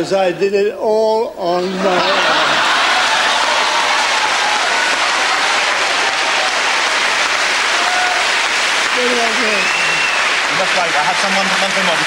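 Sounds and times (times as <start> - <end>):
large audience applauding: 2.1 - 12.0.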